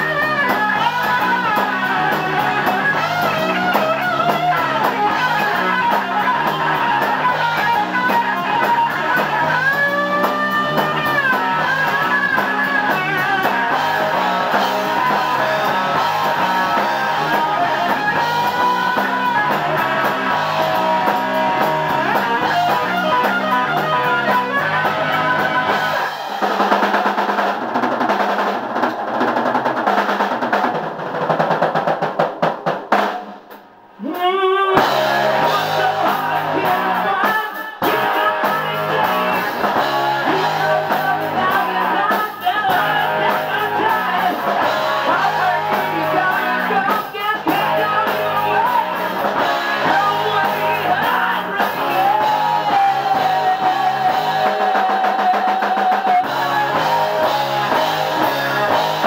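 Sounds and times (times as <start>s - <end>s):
electric bass: 0.0s - 26.8s, 34.8s - 37.2s, 37.8s - 55.2s, 56.1s - 59.0s
electric guitar: 0.0s - 30.6s, 33.9s - 59.0s
drum kit: 0.0s - 59.0s.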